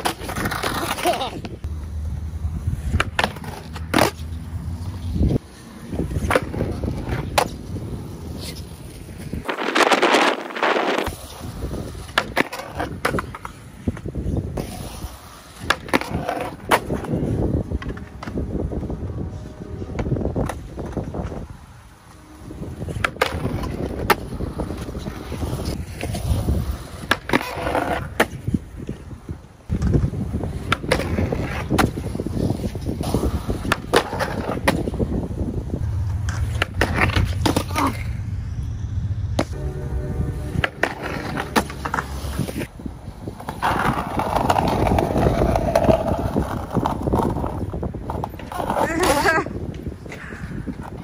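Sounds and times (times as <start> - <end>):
skateboard clacks: 0.0 - 1.7, 11.9 - 14.7, 22.8 - 29.1, 29.7 - 35.1, 43.4 - 49.9
skateboard wheels rolling on concrete: 0.0 - 51.0.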